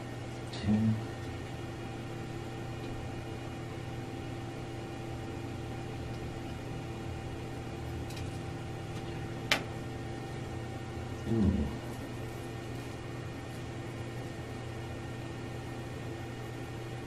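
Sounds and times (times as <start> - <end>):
machine hum with held tones: 0.0 - 17.0.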